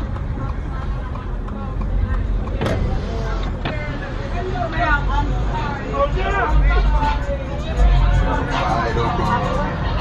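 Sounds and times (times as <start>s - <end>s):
indistinct voices: 0.0s - 10.0s.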